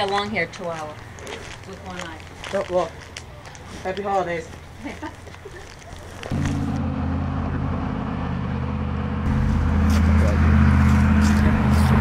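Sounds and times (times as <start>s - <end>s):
car engine running: 6.3s - 12.0s.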